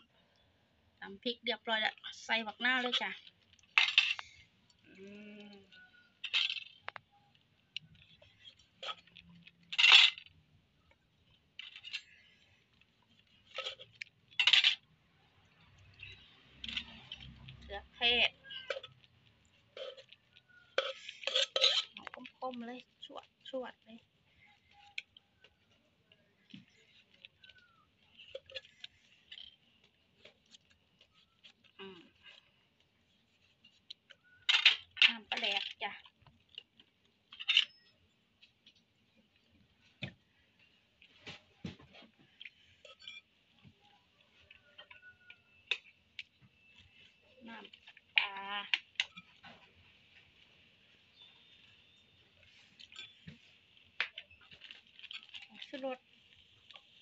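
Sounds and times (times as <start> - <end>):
pieces clinking into clay mortar: 19.7 - 22.7.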